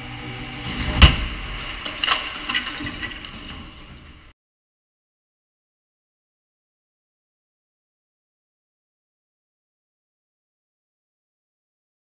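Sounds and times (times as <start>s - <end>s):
loud car crash: 0.5s - 4.1s
debris clattering: 0.6s - 4.3s.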